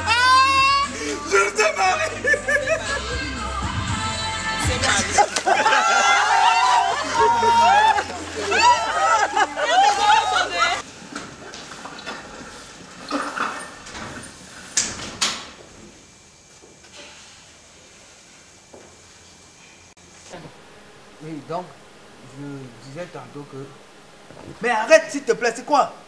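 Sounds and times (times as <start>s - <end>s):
high-pitched voices crying out: 0.0s - 3.4s, 4.8s - 10.8s.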